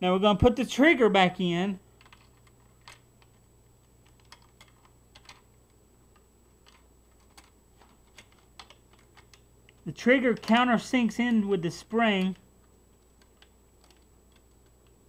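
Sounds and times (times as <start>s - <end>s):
plastic parts clicking: 2.0s - 10.7s, 12.2s - 15.0s.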